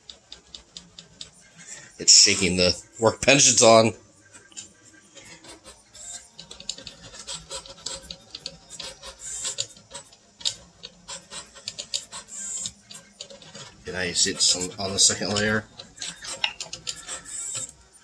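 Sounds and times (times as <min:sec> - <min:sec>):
stepper motors ticking and rattling: 0:00.0 - 0:02.5, 0:04.2 - 0:18.0.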